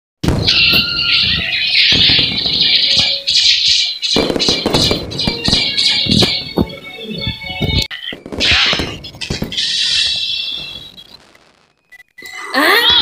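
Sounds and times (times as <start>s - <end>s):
sharp hits: 0.2s - 11.5s.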